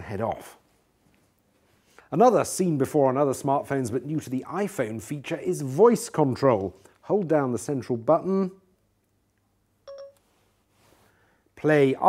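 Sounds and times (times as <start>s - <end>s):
short electronic beep: 9.9s - 10.2s.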